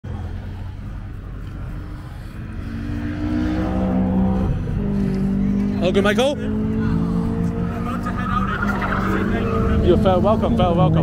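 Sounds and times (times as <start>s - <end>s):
car engine pulling away: 1.4s - 11.0s.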